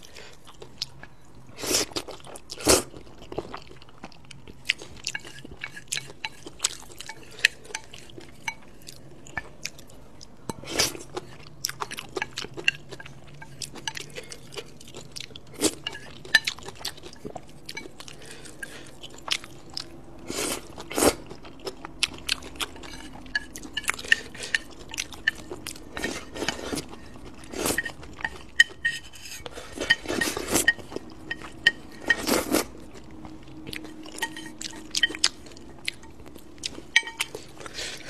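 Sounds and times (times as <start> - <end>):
chewing: 0.0 - 38.0.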